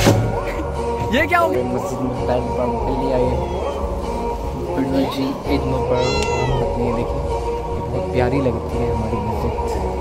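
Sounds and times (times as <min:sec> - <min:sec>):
background music: 0:00.0 - 0:10.0
cat meowing: 0:03.1 - 0:04.0, 0:04.9 - 0:06.8.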